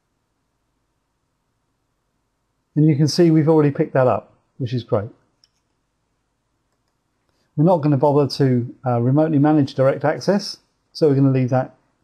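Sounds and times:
computer mouse click: 0:05.4 - 0:05.8, 0:06.7 - 0:07.0.

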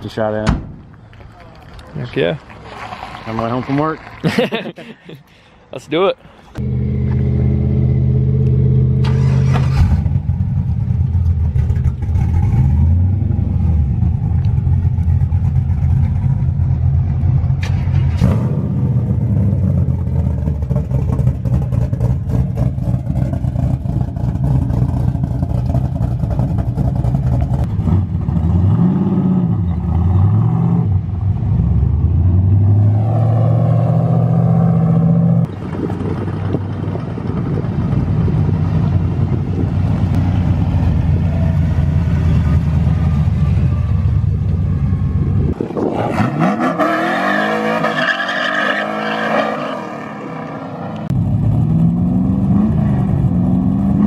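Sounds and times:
truck engines idling and revving: 0:00.0 - 0:54.0.

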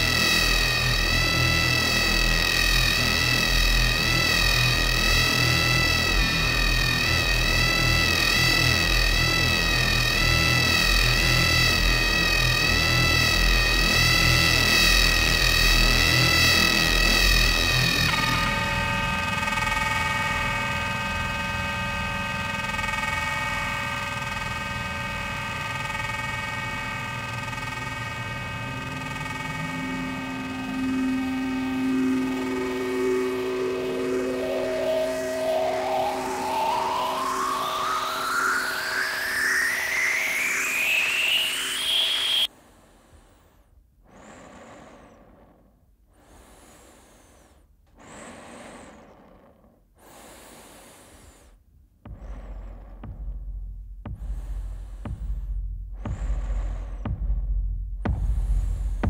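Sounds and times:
steady held chord: 0:00.0 - 0:22.4, 0:26.6 - 0:42.5
tone rising in pitch: 0:00.0 - 0:42.5
wavering electronic drone: 0:00.0 - 0:42.5, 0:52.0 - 0:57.4
deep rumble: 0:26.6 - 0:39.2, 0:51.8 - 0:59.0.

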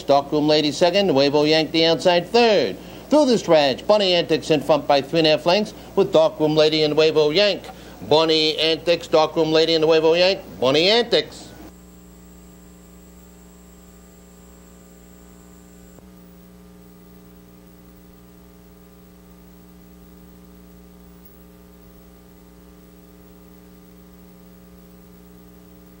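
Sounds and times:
electrical mains hum: 0:00.0 - 0:26.0
faint high whine: 0:00.0 - 0:26.0.

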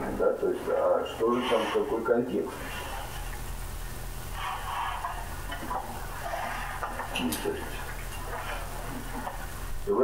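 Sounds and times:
low mains hum: 0:00.0 - 0:10.0
recording hiss: 0:00.0 - 0:10.0.

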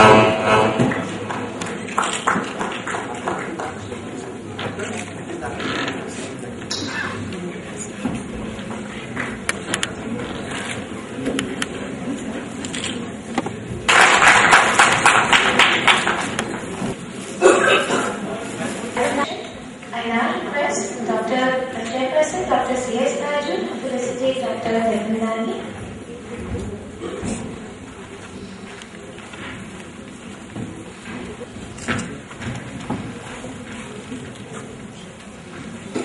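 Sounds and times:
even hall hiss: 0:00.0 - 0:36.0
faint indistinct voices: 0:00.0 - 0:36.0
audience applause: 0:01.0 - 0:04.0, 0:13.9 - 0:16.8.

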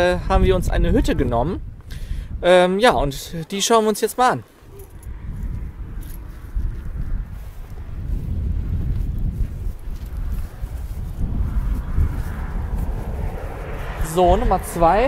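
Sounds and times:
wind buffeting microphone: 0:00.0 - 0:03.4, 0:04.6 - 0:15.0.

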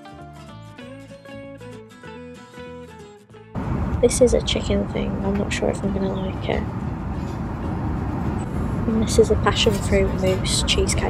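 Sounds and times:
airliner cabin roar: 0:03.6 - 0:11.0.

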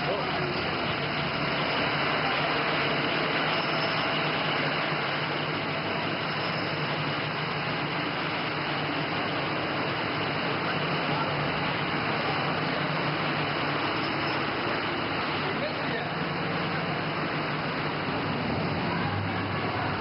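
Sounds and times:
traffic noise: 0:00.0 - 0:20.0.

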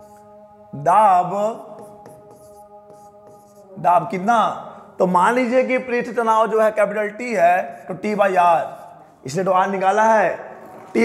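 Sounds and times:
pen scratching on screen: 0:00.0 - 0:00.3, 0:01.6 - 0:03.7, 0:07.7 - 0:09.1
man speaking: 0:00.8 - 0:01.8, 0:03.8 - 0:11.0.

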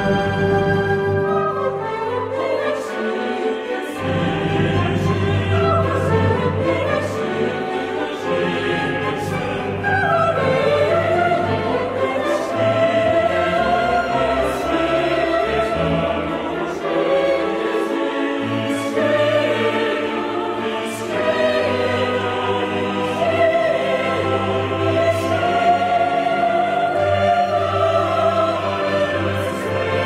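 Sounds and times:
choir singing sustained chords: 0:00.0 - 0:30.0
symphony orchestra: 0:00.0 - 0:30.0.

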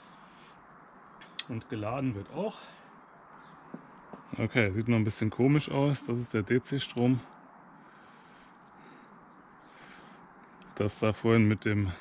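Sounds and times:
high-pitched electronic whine: 0:00.0 - 0:12.0.

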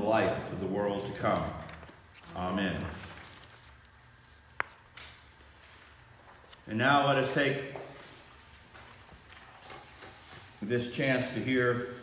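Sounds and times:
paper sheets rustling: 0:00.2 - 0:12.0
people moving about: 0:01.0 - 0:12.0.

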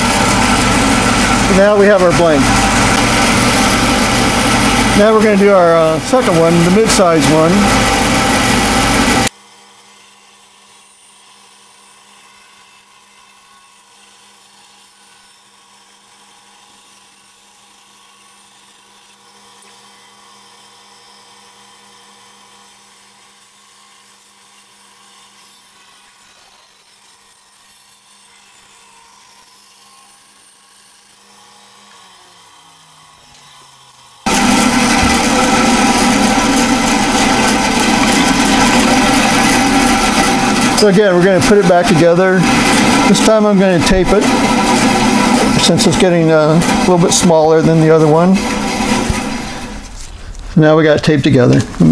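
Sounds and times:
band saw cutting wood: 0:00.0 - 0:51.9.

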